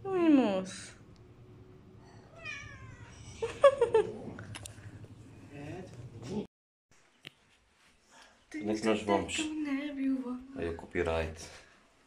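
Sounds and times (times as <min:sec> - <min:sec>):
cat meowing: 0:02.3 - 0:03.4.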